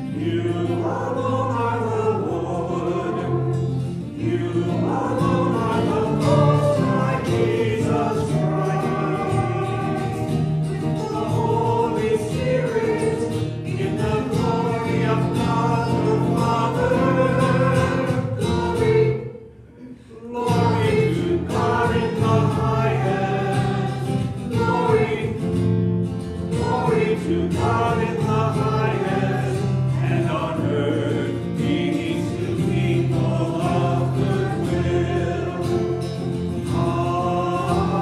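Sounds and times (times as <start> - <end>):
choir singing: 0.0 - 38.0.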